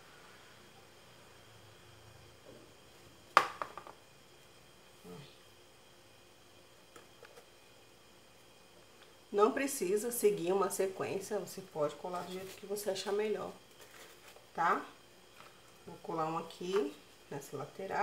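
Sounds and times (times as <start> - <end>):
faint handling sounds: 12.0 - 14.6.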